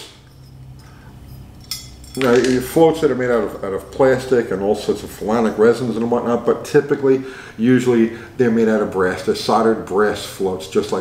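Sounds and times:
faint room hum: 0.0s - 11.0s
light metal clink: 0.4s - 2.6s
metal parts handled on table: 0.4s - 2.7s.

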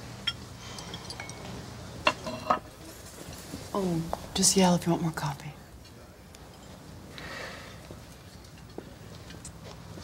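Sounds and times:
china and cutlery clinking: 0.3s - 1.5s, 2.1s - 2.7s.

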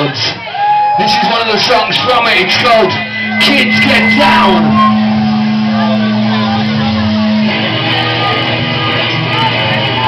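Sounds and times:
crowd chatter and shouts: 0.0s - 10.0s
loud amplified drone: 2.3s - 10.0s.

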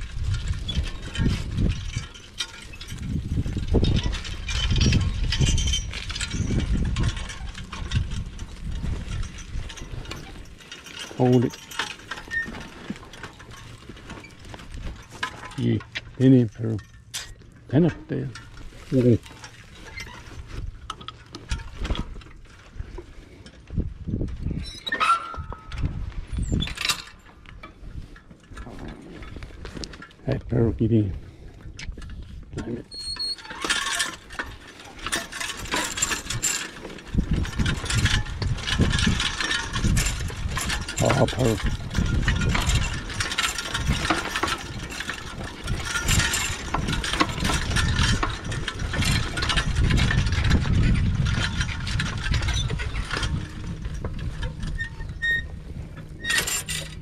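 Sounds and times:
plow frame and chains rattling: 0.0s - 57.0s
man calling to mules: 11.1s - 11.6s, 15.5s - 16.9s, 17.7s - 19.2s, 30.2s - 31.2s, 41.0s - 41.7s.

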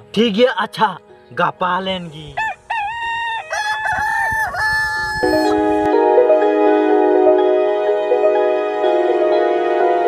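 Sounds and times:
soft sustained music: 0.0s - 3.3s, 5.2s - 10.0s
rooster crowing: 2.4s - 5.6s.

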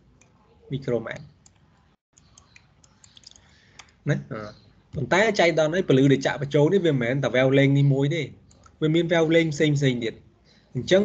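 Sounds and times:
computer mouse clicks: 1.2s - 4.0s.

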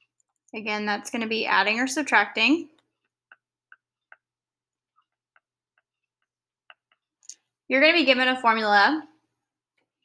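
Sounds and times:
stylus tapping on tablet screen: 2.7s - 7.5s.

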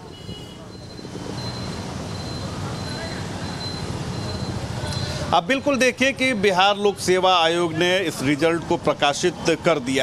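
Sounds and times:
passing traffic: 0.0s - 10.0s.

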